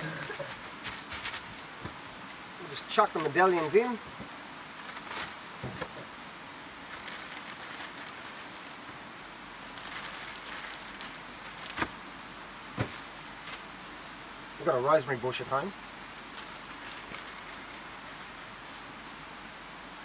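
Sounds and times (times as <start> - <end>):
plastic bag rustling: 0.0 - 6.2, 6.8 - 12.0, 12.7 - 14.4, 15.9 - 18.9.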